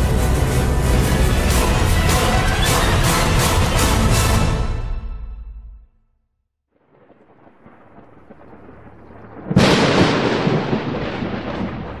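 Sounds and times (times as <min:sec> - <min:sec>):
loud rolling boom: 0:06.8 - 0:12.0.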